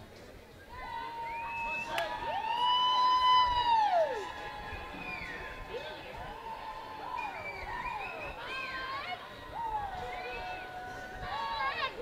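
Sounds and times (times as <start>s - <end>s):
spectators yelling: 0.7s - 12.0s.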